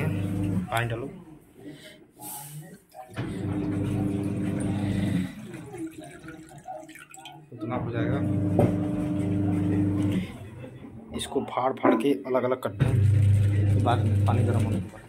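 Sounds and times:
water splashing into a pan: 0:04.2 - 0:07.5.

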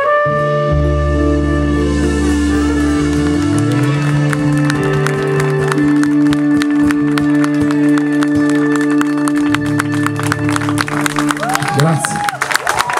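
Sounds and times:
live band playing: 0:00.0 - 0:12.9.

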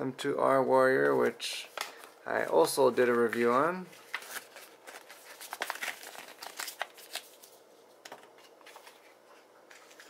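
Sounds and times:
paper and cardboard crinkling: 0:01.1 - 0:10.0.

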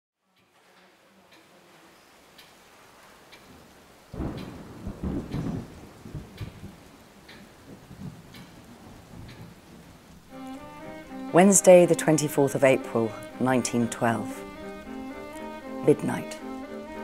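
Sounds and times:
clock ticking: 0:03.3 - 0:03.5, 0:04.2 - 0:04.6, 0:08.3 - 0:08.6, 0:10.3 - 0:17.0
thunder rumbling: 0:03.5 - 0:13.4.

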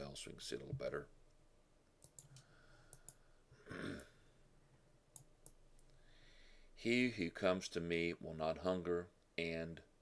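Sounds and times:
faint clicks: 0:02.0 - 0:03.2
short breath: 0:02.3 - 0:03.4, 0:05.9 - 0:06.8.

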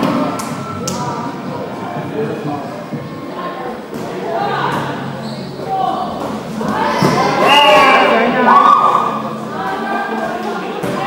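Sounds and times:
players shouting in echoing hall: 0:03.4 - 0:11.0.

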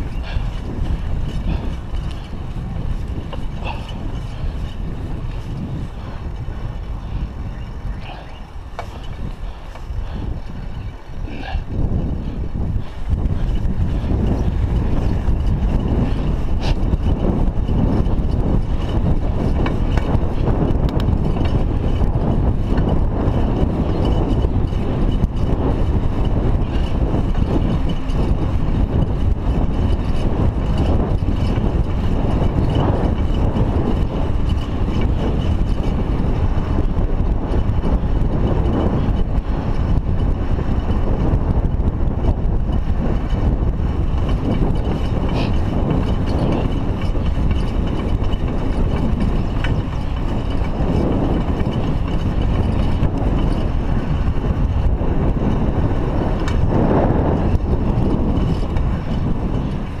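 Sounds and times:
bicycle tyres rolling on asphalt: 0:00.0 - 1:00.0
wind rumble on microphone: 0:00.0 - 1:00.0.

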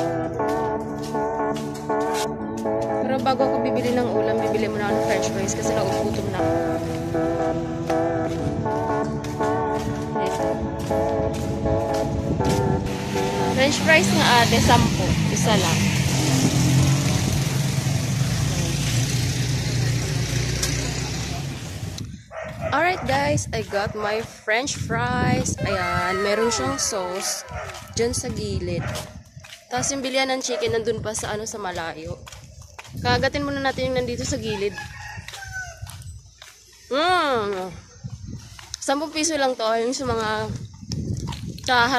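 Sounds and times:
street noise: 0:00.0 - 0:41.9.

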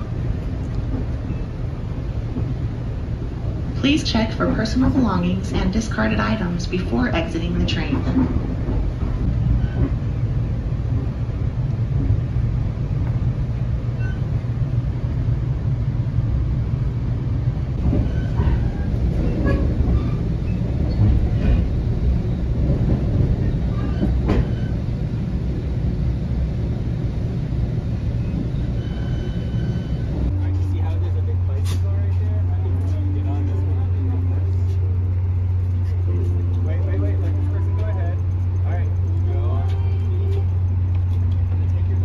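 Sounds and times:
low hum of standing train: 0:00.0 - 0:42.0
train car rumble: 0:00.0 - 0:42.0
wheels clicking on track: 0:30.5 - 0:42.0.

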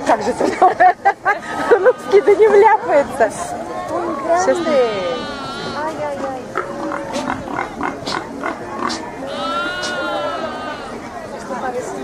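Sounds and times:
crowd chatter: 0:00.0 - 0:12.0
farm animal crying: 0:04.4 - 0:05.8, 0:09.2 - 0:11.0.

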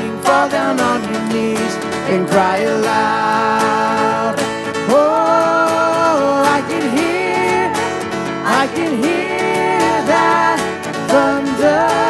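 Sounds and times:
acoustic guitar: 0:00.0 - 0:12.0
keyboard: 0:00.0 - 0:12.0.

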